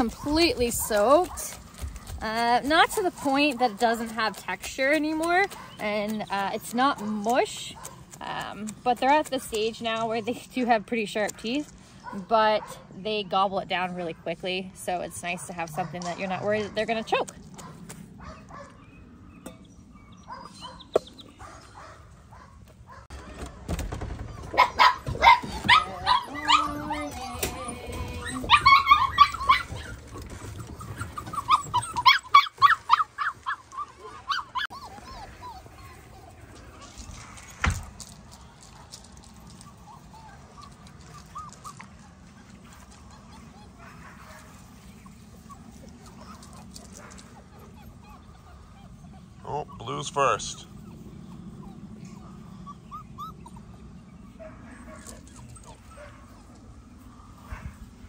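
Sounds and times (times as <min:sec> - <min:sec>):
puppies barking and yipping: 0:00.0 - 0:10.5, 0:13.8 - 0:58.0.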